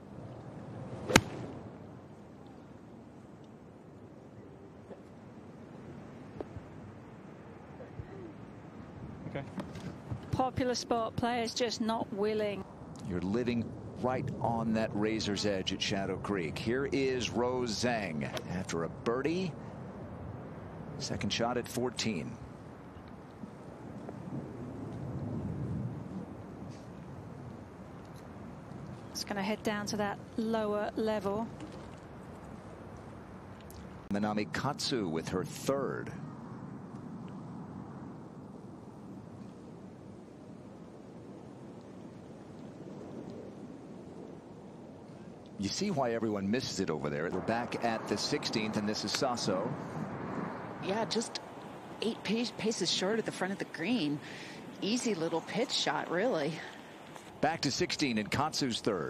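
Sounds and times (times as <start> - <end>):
faint outdoor hush: 0.0 - 59.0
golf club striking ball: 1.1 - 1.5
low rumble: 45.9 - 52.0.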